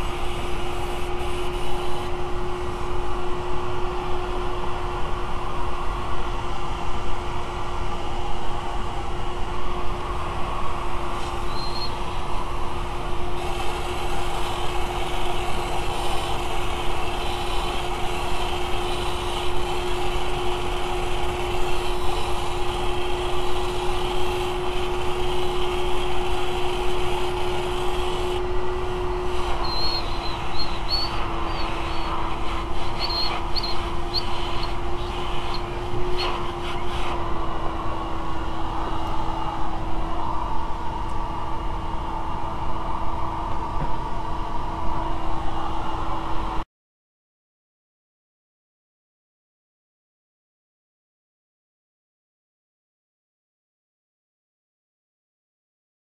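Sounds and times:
compressed air blasting hiss: 0:00.0 - 0:02.1, 0:13.4 - 0:28.4, 0:29.1 - 0:37.2
shop vacuum whine: 0:00.0 - 0:46.6.

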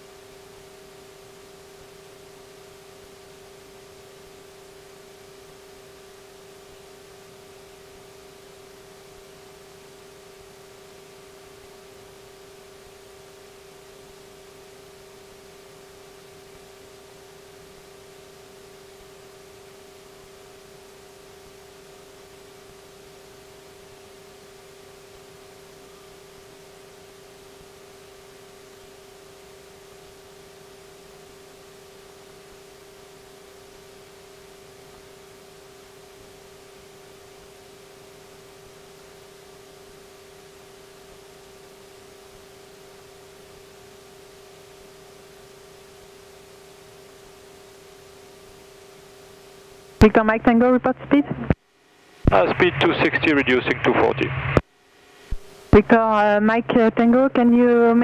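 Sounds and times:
aircraft cabin hiss and hum: 0:52.2 - 0:58.0.

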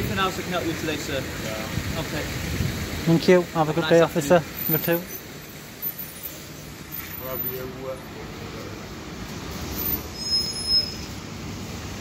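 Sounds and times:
city street traffic: 0:00.0 - 0:12.0
high-pitched squeal: 0:09.7 - 0:11.2.

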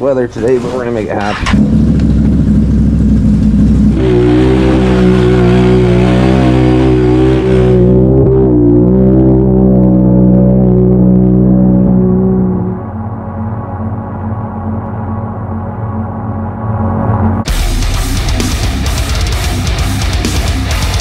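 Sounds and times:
atv engine running: 0:01.2 - 0:12.8.

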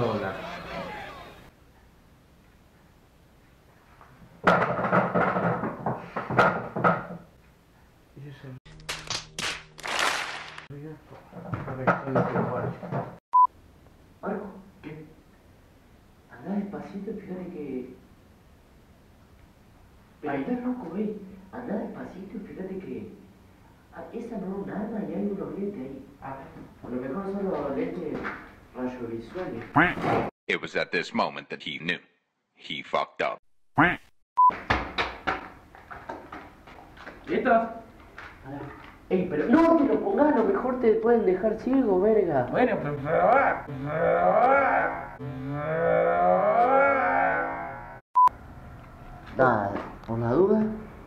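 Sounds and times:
people shouting and cheering: 0:00.0 - 0:01.5, 0:43.0 - 0:45.2, 0:45.9 - 0:48.0.

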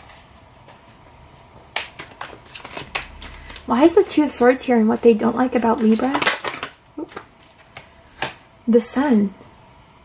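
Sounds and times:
cards shuffling: 0:01.8 - 0:04.2, 0:05.8 - 0:08.4.

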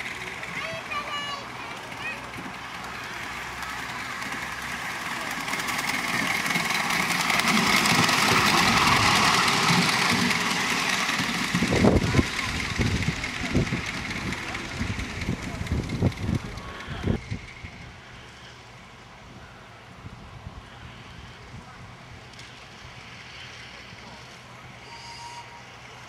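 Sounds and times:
model steam locomotive running: 0:00.0 - 0:26.0.

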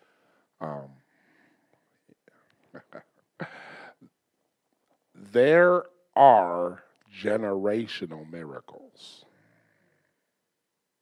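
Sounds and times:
man laughing breathily: 0:02.8 - 0:04.0
mouth sounds: 0:02.8 - 0:04.1.

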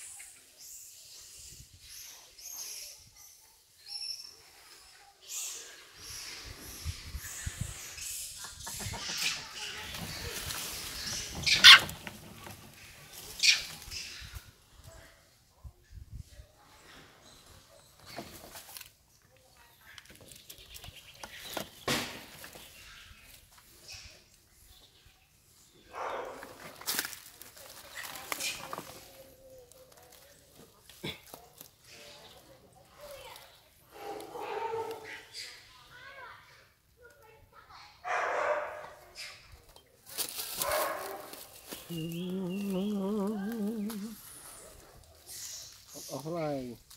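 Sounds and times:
rough animal calls: 0:07.8 - 0:12.1
macaques calling: 0:11.4 - 0:12.0.

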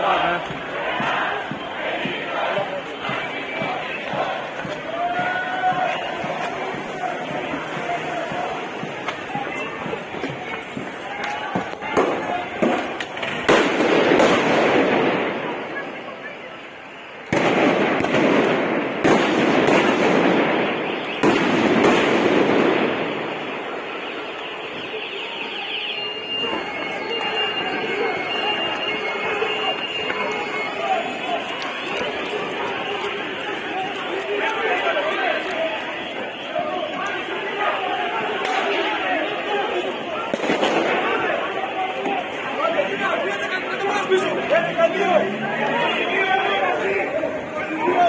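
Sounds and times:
crowd shouting: 0:00.0 - 0:48.0
high beeps: 0:23.9 - 0:33.6.

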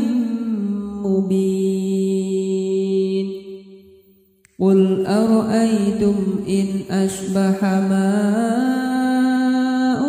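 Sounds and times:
person chanting recitation: 0:00.0 - 0:03.5, 0:04.5 - 0:10.0.

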